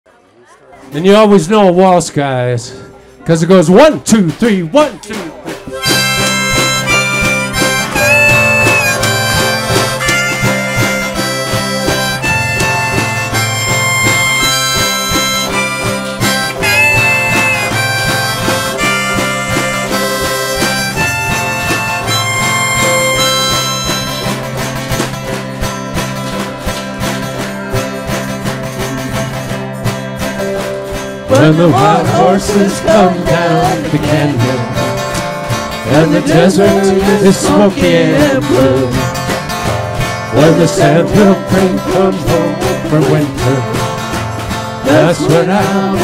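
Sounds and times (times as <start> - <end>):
folk ensemble playing a waltz: 5.0 - 46.0.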